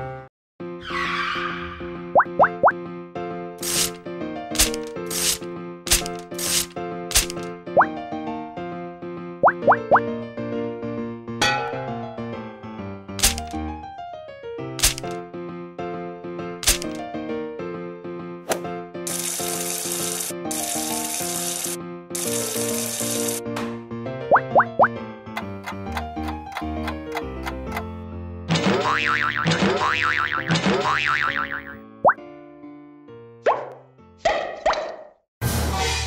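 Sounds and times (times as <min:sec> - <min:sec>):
cheerful cartoon music: 0:00.0 - 0:36.0.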